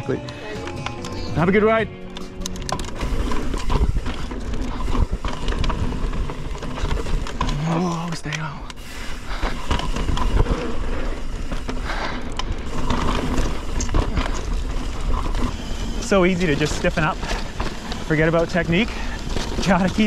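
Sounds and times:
tyres on dirt: 0:00.0 - 0:20.0
bike rattling and clattering: 0:00.6 - 0:20.0
rider grunting: 0:09.2 - 0:15.3.

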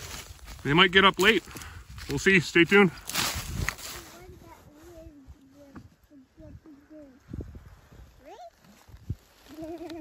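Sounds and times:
children talking quietly: 0:03.8 - 0:10.0.

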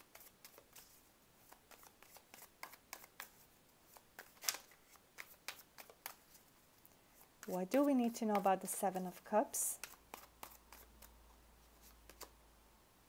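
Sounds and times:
cards shuffling: 0:00.0 - 0:06.5, 0:07.2 - 0:12.4.

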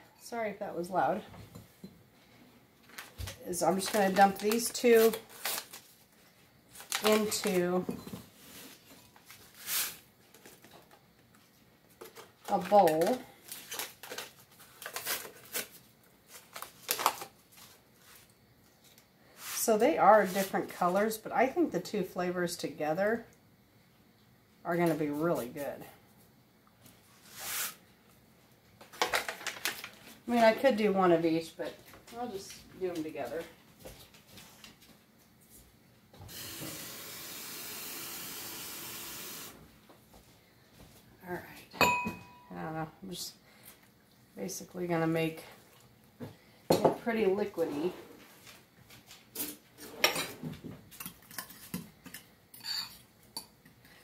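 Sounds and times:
foil packets crinkling: 0:02.9 - 0:07.8, 0:12.1 - 0:18.3, 0:28.9 - 0:30.2
glass clink: 0:41.8 - 0:42.5, 0:52.6 - 0:53.5.

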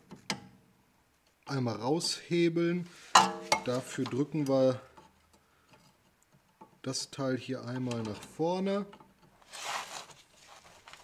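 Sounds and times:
person speaking: 0:01.5 - 0:05.0, 0:06.8 - 0:08.9.

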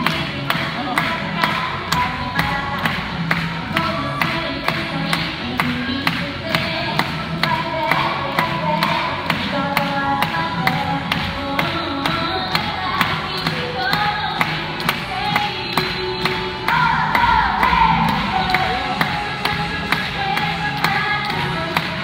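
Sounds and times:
pop dance music over speakers: 0:00.0 - 0:22.0.

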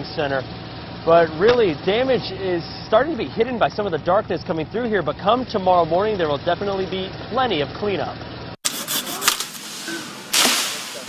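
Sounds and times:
pruning shears clicking: 0:08.7 - 0:09.7
leaves swishing and rustling: 0:08.9 - 0:11.0.

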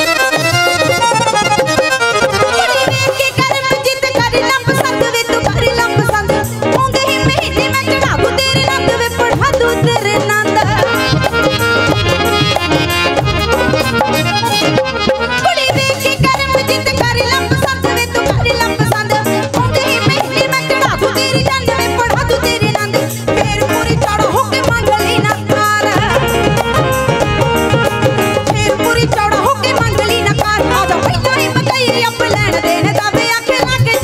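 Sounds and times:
quick steady drum beat: 0:00.0 - 0:34.0
reedy keyboard melody: 0:00.0 - 0:34.0
steady percussion: 0:00.0 - 0:34.0
person singing: 0:02.2 - 0:05.0
steady beat: 0:10.6 - 0:16.4.

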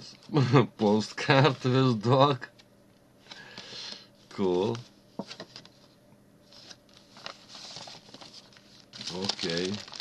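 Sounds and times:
paper rustling: 0:06.5 - 0:10.0.

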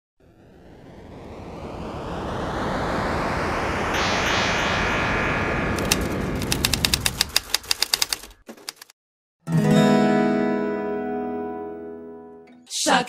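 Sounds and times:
swell of noise: 0:00.0 - 0:07.6
sharp rapid clicks: 0:05.8 - 0:08.9.

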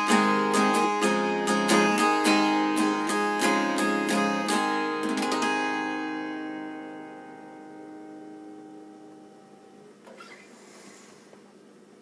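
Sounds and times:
acoustic guitar chord ringing: 0:00.0 - 0:10.0
faint room hiss: 0:00.0 - 0:12.0.

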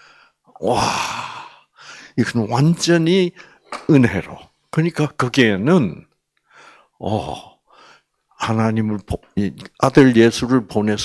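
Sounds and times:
old man breathy exclamation: 0:00.5 - 0:01.7.

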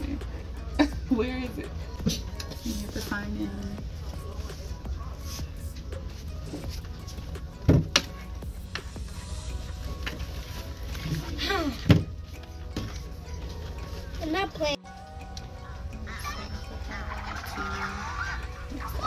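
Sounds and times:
background music: 0:00.0 - 0:19.0.

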